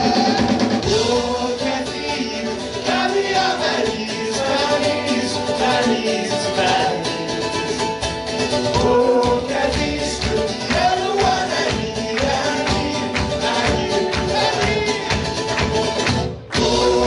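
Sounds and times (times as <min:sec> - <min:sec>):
drum kit: 0:00.0 - 0:17.0
strummed guitars: 0:00.0 - 0:17.0
voices singing together: 0:00.0 - 0:17.0.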